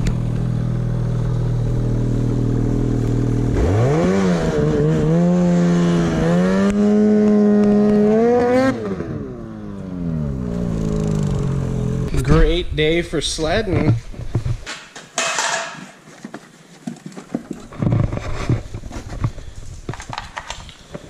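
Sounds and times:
snowmobile engine revving: 0:00.0 - 0:13.4.

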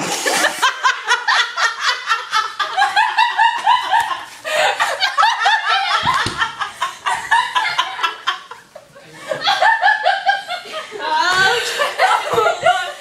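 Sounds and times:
people laughing hard: 0:00.0 - 0:13.0.

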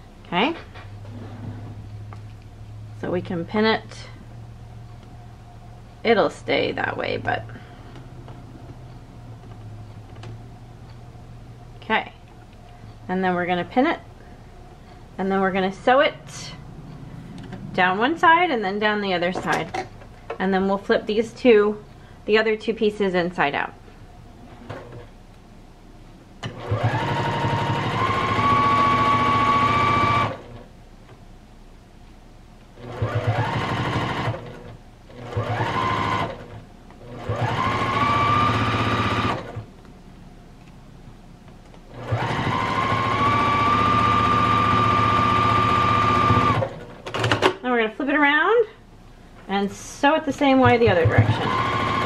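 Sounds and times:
sewing machine whining: 0:26.4 - 0:30.6, 0:32.8 - 0:39.6, 0:41.9 - 0:47.0, 0:50.9 - 0:52.0.

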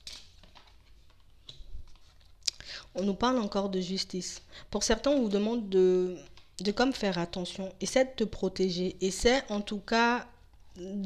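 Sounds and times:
card rustling: 0:00.0 - 0:02.4.

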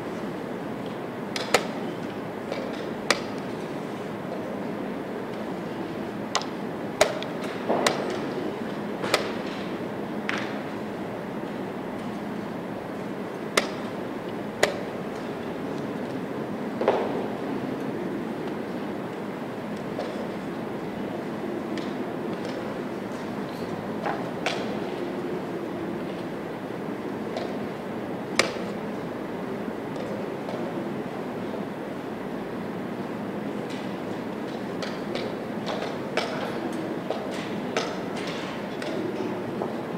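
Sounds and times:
murmur of a busy hall: 0:00.0 - 0:39.9.

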